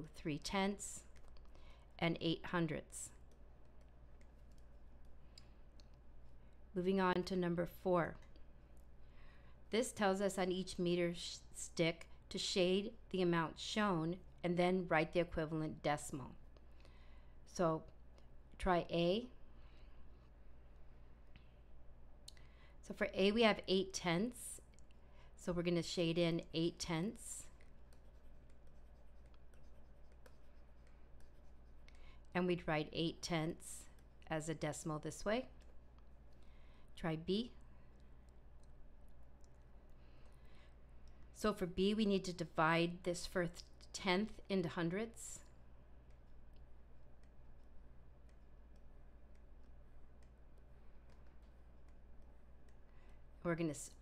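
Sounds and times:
low steady hum: 0.0 - 54.0
stylus scribbling on a tablet: 0.3 - 5.2, 25.7 - 36.3, 44.0 - 54.0
stylus clicks on tablet: 45.4 - 54.0.

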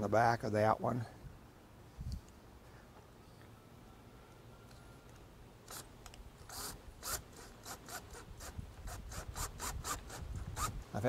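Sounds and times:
drill driving screw into board: 5.7 - 10.8.

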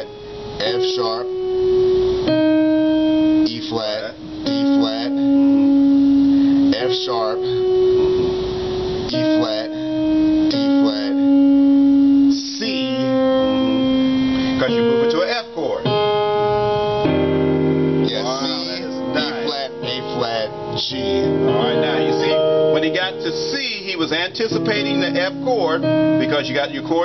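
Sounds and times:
piano blues run: 0.0 - 27.0.

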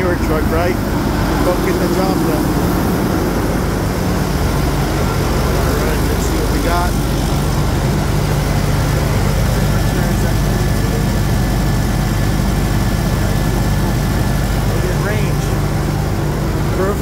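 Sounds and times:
diesel engine idling: 0.0 - 17.0.

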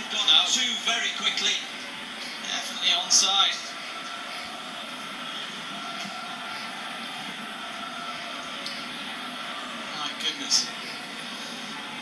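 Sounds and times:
football match on tv: 0.0 - 12.0
sports commentary: 0.0 - 12.0.

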